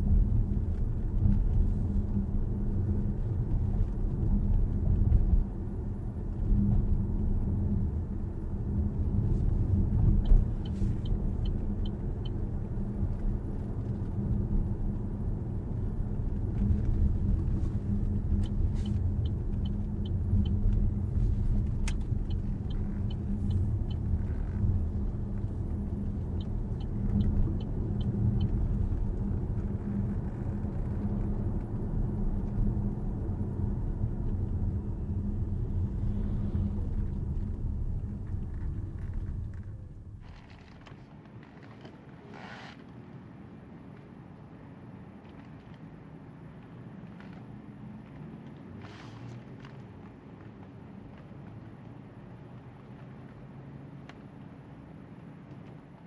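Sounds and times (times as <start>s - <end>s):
road and tyre rumble in car cabin: 0.0s - 56.0s.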